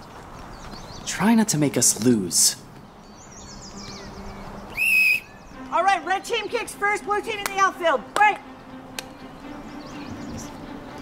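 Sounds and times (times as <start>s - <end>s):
faint bird chirps: 2.9s - 5.7s
sports whistle blast: 4.8s - 5.3s.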